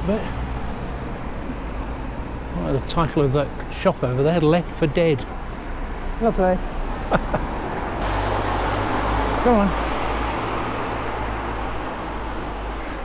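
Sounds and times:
tyre hiss on wet road: 8.0s - 12.1s.

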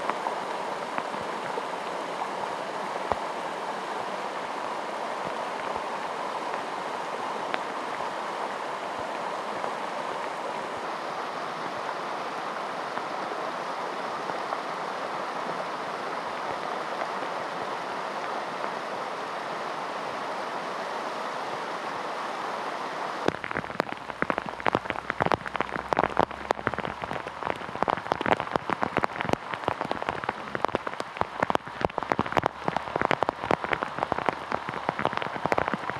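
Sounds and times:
floodwater rushing: 0.0s - 35.9s
heavy rain: 0.0s - 35.9s.

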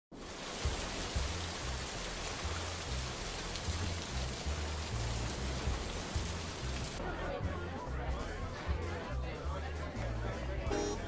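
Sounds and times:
steady rain falling: 0.1s - 7.0s.

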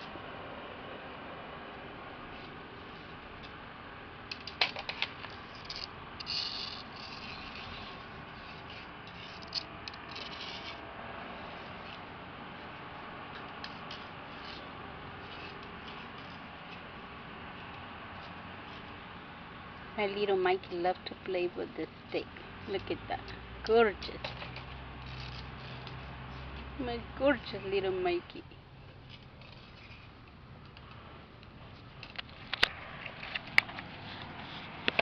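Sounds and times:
faint outdoor hiss: 0.0s - 35.0s
stick clicking on concrete: 4.3s - 10.8s, 13.3s - 14.7s
stick scraping on concrete: 4.3s - 19.0s, 22.7s - 26.8s, 29.1s - 30.3s.

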